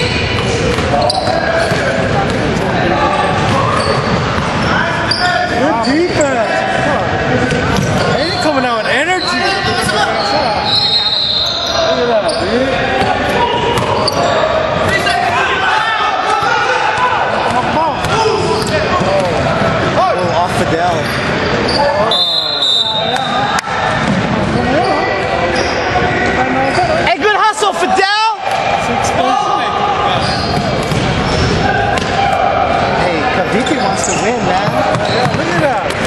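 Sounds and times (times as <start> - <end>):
shoe squeaks: 0.0 - 2.0, 3.5 - 6.4, 7.7 - 15.4, 21.0 - 23.6, 24.6 - 27.0, 30.1 - 31.7, 32.8 - 35.8
players' voices: 0.0 - 36.0.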